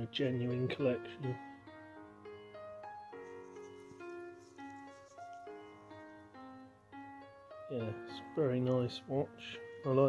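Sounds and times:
sustained keyboard notes: 0.6 - 10.0.

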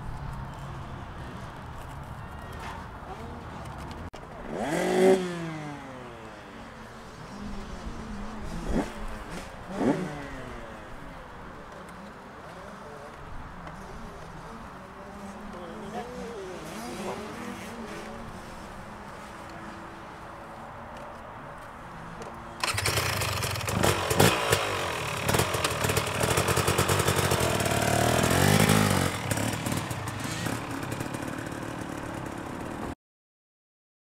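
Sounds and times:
low background noise: 0.0 - 32.9
motorbike engine revving: 4.4 - 6.2, 7.2 - 10.7, 22.6 - 32.9.

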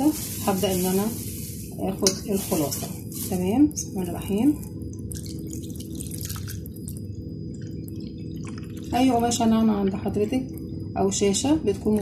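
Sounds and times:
thick liquid pouring and splashing: 5.1 - 9.4.

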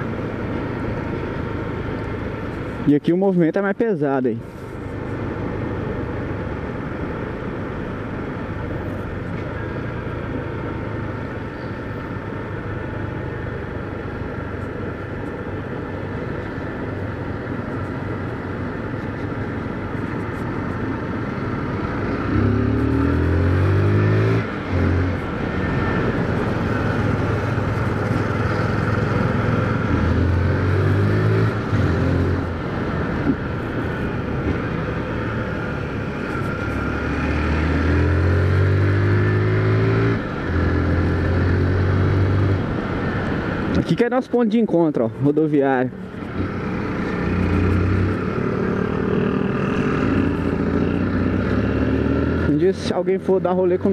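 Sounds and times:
road and wind noise: 0.0 - 53.9
motorcycle engine accelerating: 21.5 - 32.6, 34.5 - 42.6, 46.2 - 52.7.

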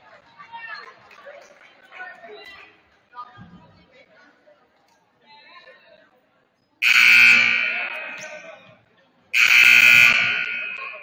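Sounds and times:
scoreboard buzzer blasts: 6.8 - 8.4, 9.4 - 11.0.

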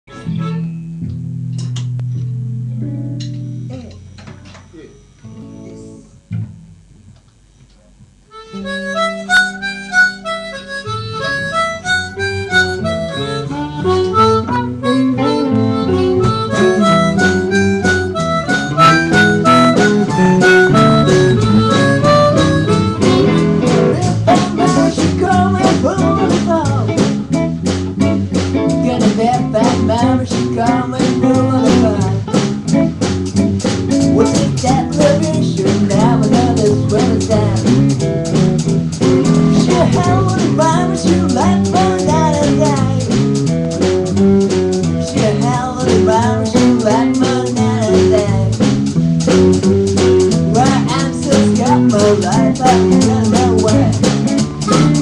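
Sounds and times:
harmonica: 0.1 - 0.8, 8.3 - 26.4, 49.2 - 55.0
live blues band: 0.1 - 4.5, 8.3 - 55.0.

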